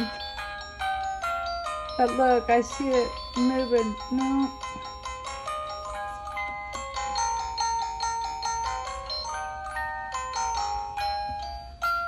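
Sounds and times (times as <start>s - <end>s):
electronic chime melody: 0.0s - 12.0s.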